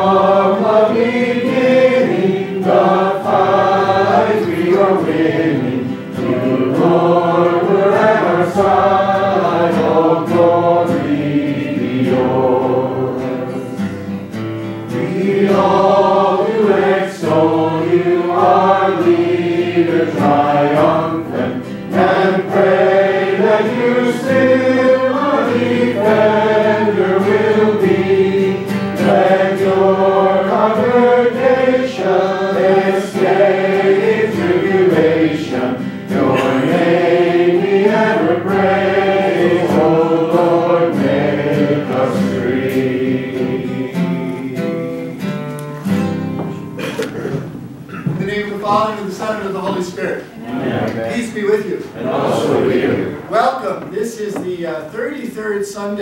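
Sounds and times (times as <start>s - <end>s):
choir singing a hymn: 0.0s - 53.3s.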